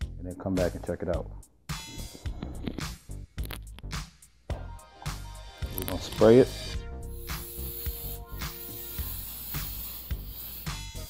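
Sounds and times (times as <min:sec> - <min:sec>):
background music with bass beat: 0:00.0 - 0:11.0
aerosol oil spray hissing: 0:05.6 - 0:11.0.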